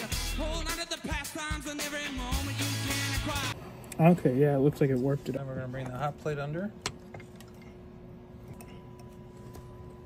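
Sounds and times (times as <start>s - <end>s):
faint steady hum: 3.5s - 10.0s.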